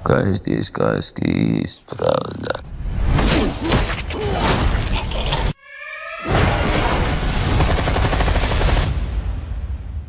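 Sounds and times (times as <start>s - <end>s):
trailer music: 5.6s - 10.0s
rapid gunfire: 7.4s - 9.0s.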